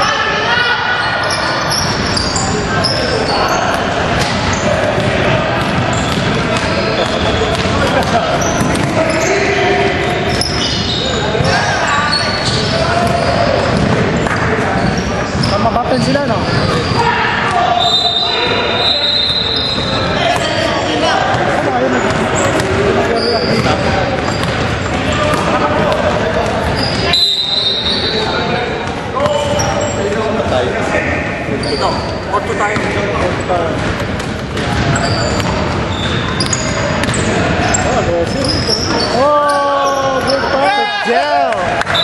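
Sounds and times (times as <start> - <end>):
voices echoing in gym: 0.0 - 42.0.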